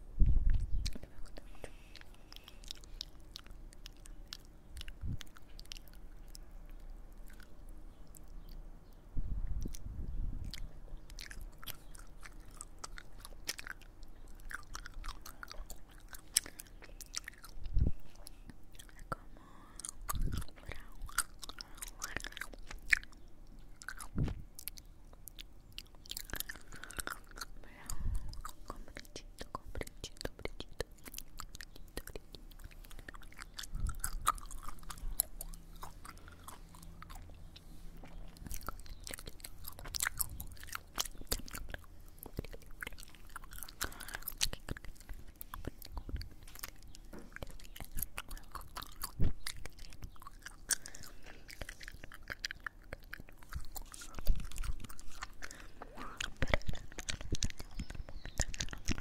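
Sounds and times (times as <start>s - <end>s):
wet mouth clicks and smacks: 0.2s - 59.0s.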